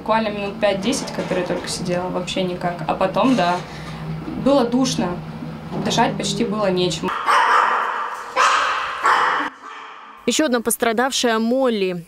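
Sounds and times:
small dog barking: 7.1s - 10.2s.

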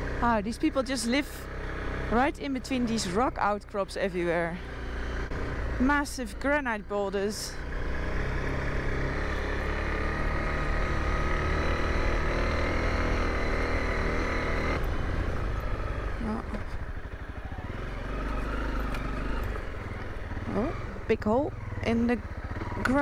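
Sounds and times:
motorcycle engine running: 0.0s - 23.0s.

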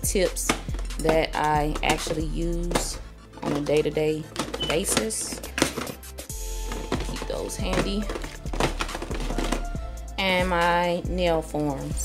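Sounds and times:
background music: 0.0s - 12.0s
plastic boxes clicking and knocking: 0.4s - 9.8s.

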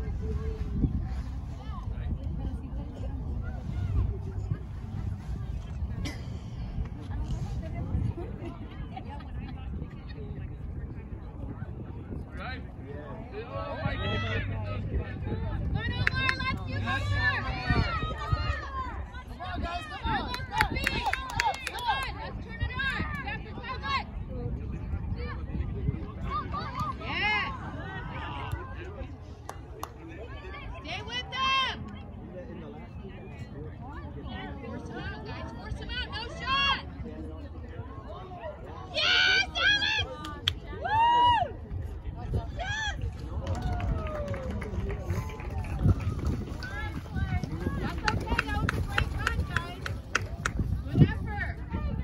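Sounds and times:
low rumble: 0.0s - 19.5s.

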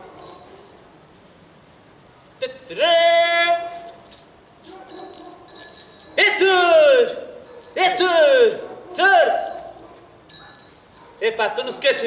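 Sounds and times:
faint high ringing tones: 0.2s - 0.8s, 3.8s - 8.3s, 9.4s - 11.2s
man shouting a held note: 2.8s - 3.8s, 6.2s - 9.4s.

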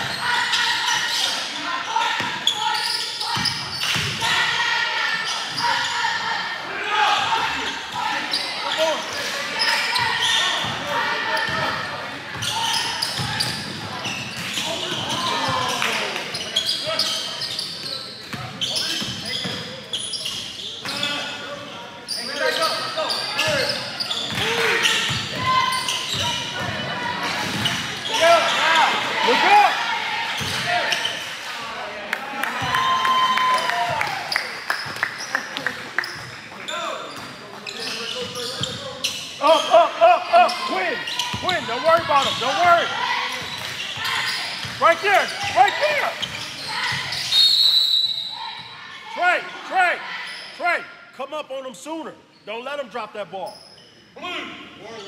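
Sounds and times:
spectators and players shouting: 0.0s - 13.7s, 22.2s - 34.5s, 39.4s - 50.9s.

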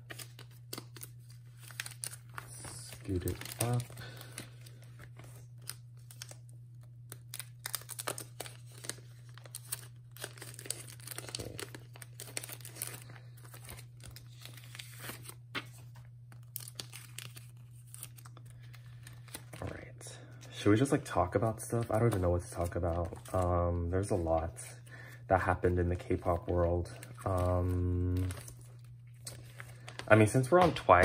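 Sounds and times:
plastic pages crinkling: 0.0s - 31.0s.

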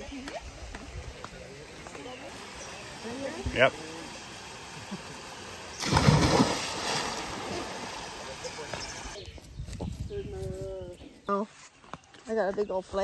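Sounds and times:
water noise: 0.0s - 9.2s
person splashing into water: 5.8s - 8.2s.

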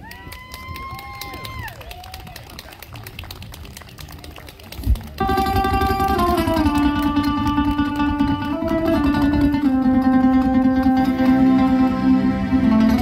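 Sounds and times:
high cheers of woo: 0.0s - 2.7s
audience clapping: 0.0s - 8.2s
flamenco guitar playing: 4.8s - 13.0s.

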